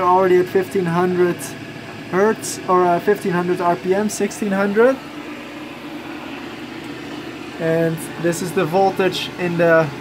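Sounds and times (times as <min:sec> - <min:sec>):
electric motor humming: 0:00.0 - 0:10.0.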